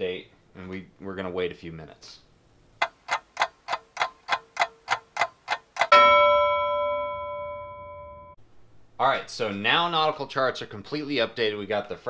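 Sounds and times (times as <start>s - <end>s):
clock ticking: 2.8s - 6.2s
bell ding: 5.9s - 8.4s.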